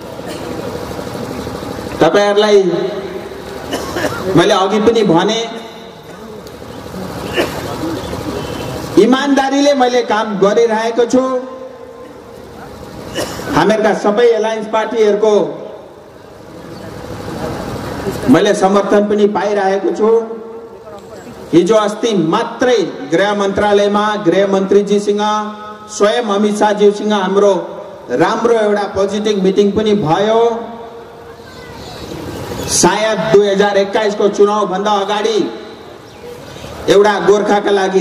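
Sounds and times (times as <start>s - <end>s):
low rumbling noise: 0.0s - 38.0s
outdoor background noise: 0.0s - 38.0s
steady engine-like drone: 0.0s - 38.0s.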